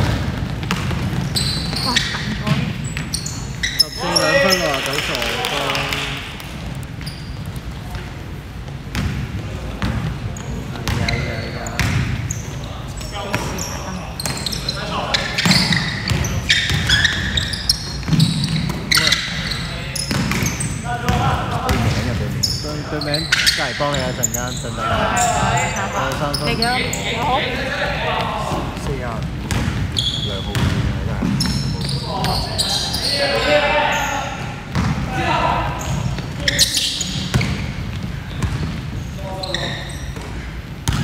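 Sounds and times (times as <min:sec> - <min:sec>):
basketball bouncing on hardwood: 0:00.0 - 0:03.1, 0:11.8 - 0:12.2
players calling out: 0:00.9 - 0:08.4, 0:09.4 - 0:41.0.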